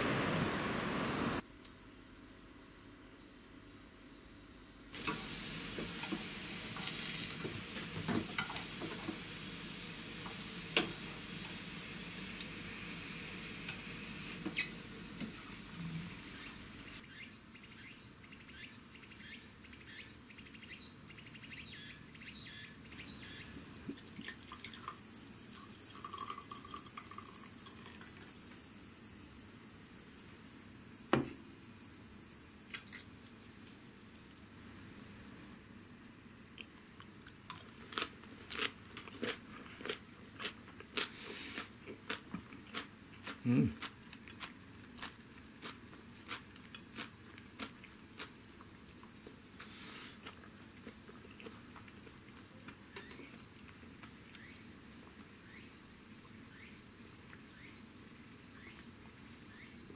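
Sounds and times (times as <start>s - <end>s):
vegetables sizzling in a pan: 5.0s - 17.0s, 23.0s - 35.6s.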